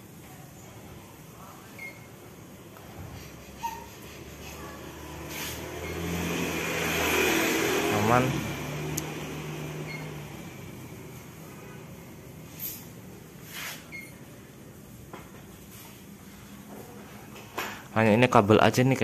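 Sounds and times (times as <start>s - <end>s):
motor vehicle passing by: 3.0s - 13.9s.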